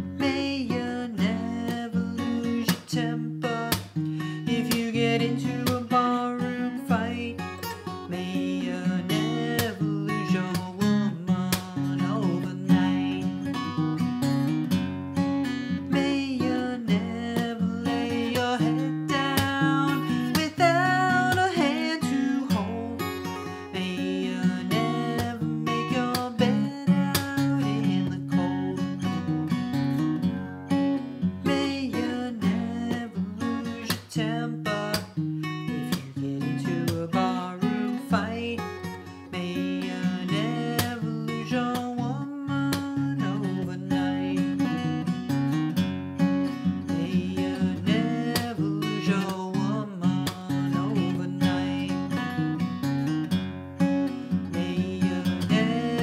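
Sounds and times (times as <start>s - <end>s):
person singing: 0.0s - 14.6s, 15.4s - 45.4s, 46.5s - 52.8s, 54.0s - 56.0s
fingerstyle acoustic guitar: 0.0s - 56.0s.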